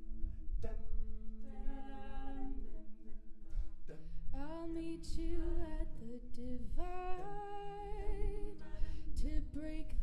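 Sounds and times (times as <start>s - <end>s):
voices humming a chord: 0.0s - 10.0s.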